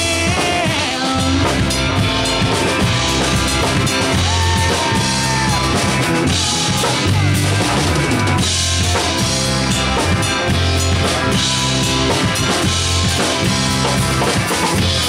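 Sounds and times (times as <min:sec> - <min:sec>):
drum kit: 0:00.0 - 0:15.0
electric guitar: 0:00.0 - 0:15.0
rock band playing live: 0:00.0 - 0:15.0.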